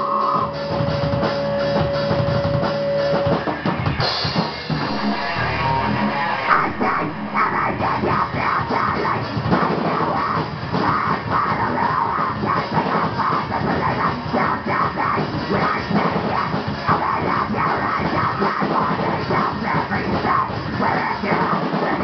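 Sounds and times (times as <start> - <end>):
distorted electric guitars: 0.0 - 22.0
pounding drum kit: 0.0 - 22.0.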